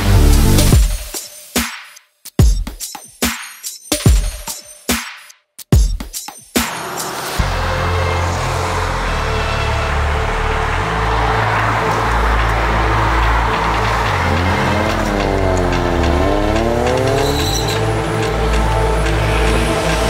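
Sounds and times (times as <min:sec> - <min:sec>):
music with heavy bass line: 0:00.0 - 0:01.7, 0:05.8 - 0:20.0
car engine pulling away: 0:07.2 - 0:20.0.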